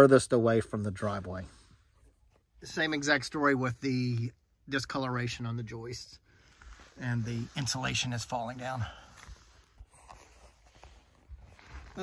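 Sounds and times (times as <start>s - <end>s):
shuffling and rustling: 6.4s - 12.0s.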